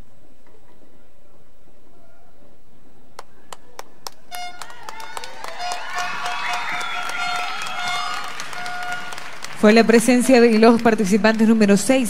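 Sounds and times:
audience clapping: 3.2s - 12.0s
whistles: 4.3s - 9.3s
shouted cheers: 4.4s - 9.5s.

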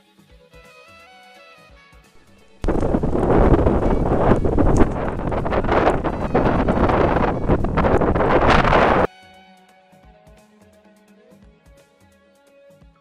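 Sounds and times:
wind buffeting microphone: 2.2s - 9.1s.

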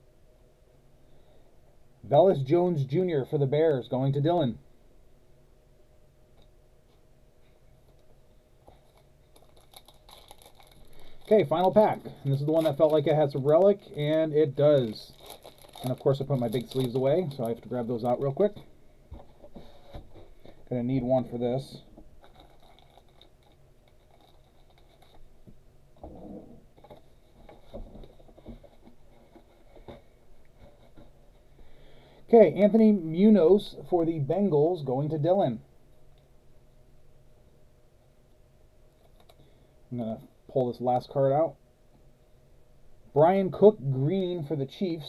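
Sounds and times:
low room hum: 0.0s - 45.0s
foil card pack crinkling: 8.7s - 18.6s, 22.2s - 25.3s.

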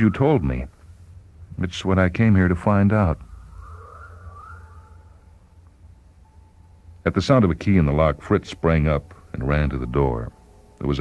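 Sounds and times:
faint wavering whistle-like tone: 0.0s - 7.0s
steady low hum: 0.0s - 11.0s.

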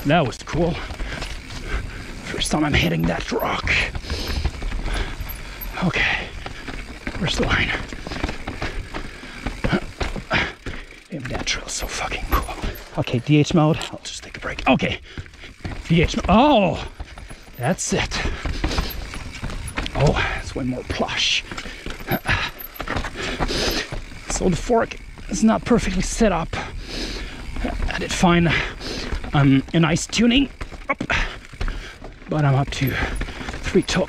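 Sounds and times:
bike tyres knocking on rocks: 0.0s - 11.6s, 14.4s - 26.7s, 27.3s - 34.0s
chain and frame clanking: 0.0s - 26.4s, 27.3s - 34.0s.

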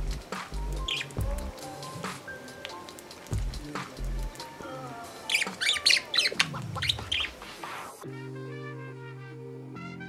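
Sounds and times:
soft background music: 0.0s - 10.0s
budgerigar chirping and warbling: 0.8s - 1.2s, 5.3s - 7.5s
budgerigar falling glide call: 0.8s - 1.2s, 4.8s - 7.9s.

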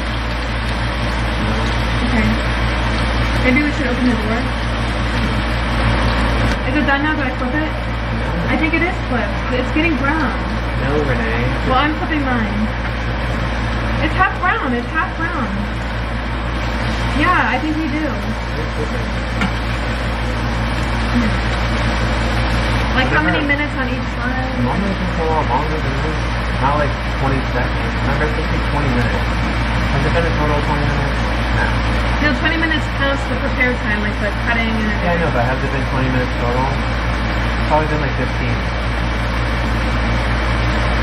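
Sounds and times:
burgers sizzling in a frying pan: 0.0s - 6.5s, 7.1s - 24.2s
range hood fan running: 0.0s - 41.0s.

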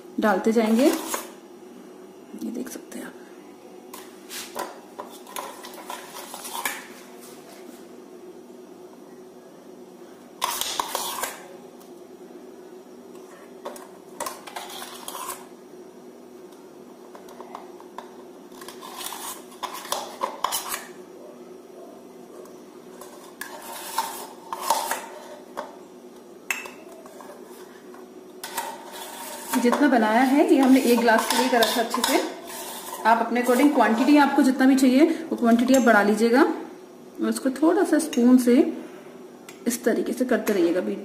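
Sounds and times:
faint steady hum: 0.0s - 41.0s
metal spoon scraping a bowl: 10.4s - 11.4s, 14.2s - 15.5s, 18.6s - 20.9s, 23.0s - 25.5s, 28.4s - 34.4s
spoon clinking and scraping bowl: 28.4s - 34.2s.

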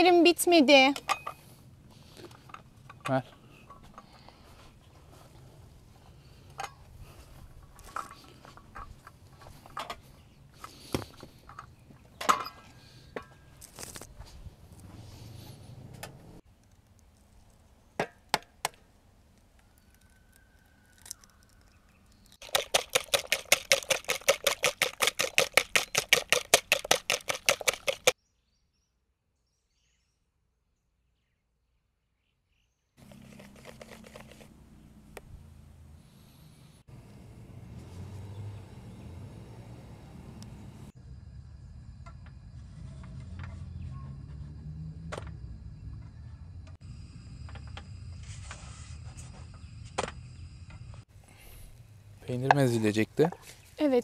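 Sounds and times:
whisk beating batter in a bowl: 22.4s - 28.2s.

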